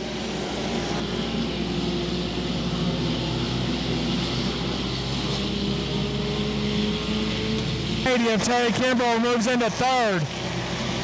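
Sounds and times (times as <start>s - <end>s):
race car engines droning: 0.0s - 11.0s.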